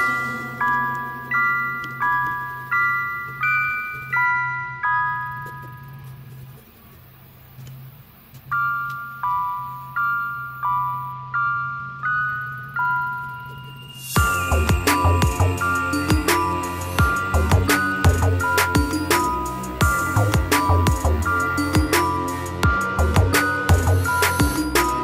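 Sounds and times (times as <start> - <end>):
bell-like mallet chords: 0.0 - 6.3, 8.5 - 25.0
steady low hum: 14.2 - 25.0.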